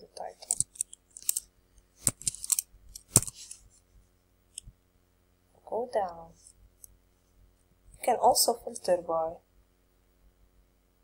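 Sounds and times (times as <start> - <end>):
computer mouse clicks: 0.4 - 1.4.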